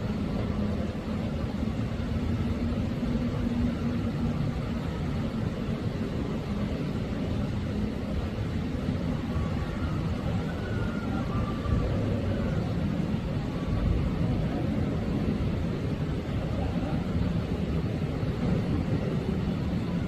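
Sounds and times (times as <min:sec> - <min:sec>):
low rumbling background noise: 0:00.0 - 0:20.0.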